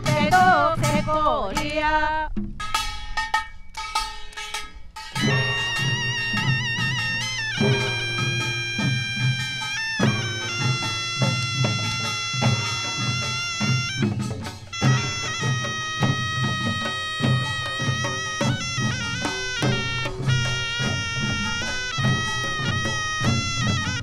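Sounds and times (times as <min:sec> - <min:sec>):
drum beats: 0:00.0 - 0:24.0
reed shawm piercing notes: 0:00.0 - 0:24.0.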